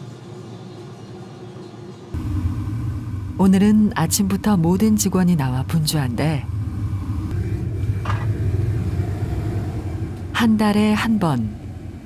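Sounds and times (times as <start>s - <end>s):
furnace fire rumbling: 2.1s - 12.0s.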